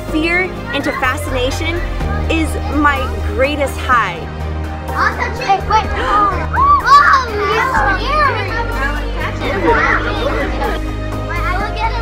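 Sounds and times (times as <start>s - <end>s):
background music with bass line: 0.0s - 12.0s
children exclaiming and chattering: 0.5s - 12.0s.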